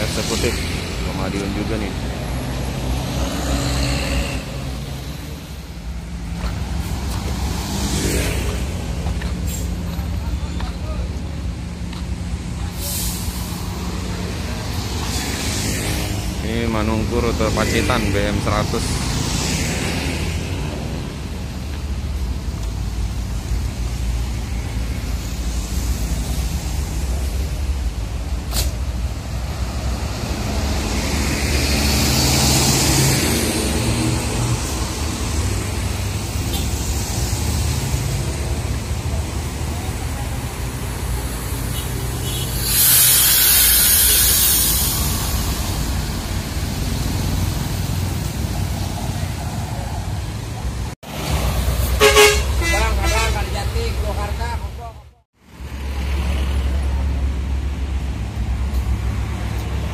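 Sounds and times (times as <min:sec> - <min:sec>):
passing road traffic: 0:00.0 - 0:59.9
compressed air hiss: 0:12.7 - 0:13.8, 0:41.4 - 0:46.8.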